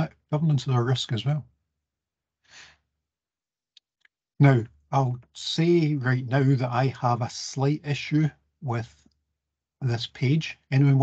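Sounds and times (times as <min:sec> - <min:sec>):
man's soft breath: 0:02.4 - 0:02.9.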